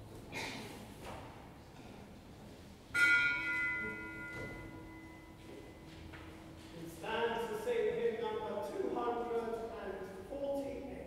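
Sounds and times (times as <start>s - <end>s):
bell ringing: 3.0s - 5.8s.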